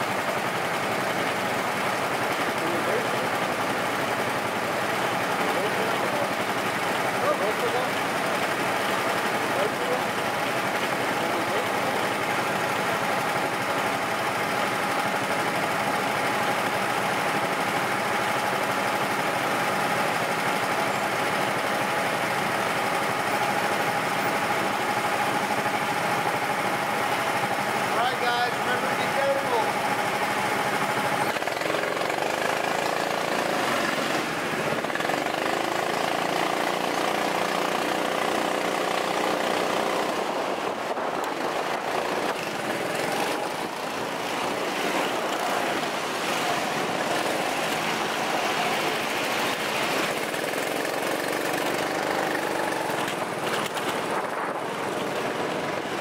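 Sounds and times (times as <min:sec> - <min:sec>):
go-kart motors droning: 0:00.0 - 0:56.0.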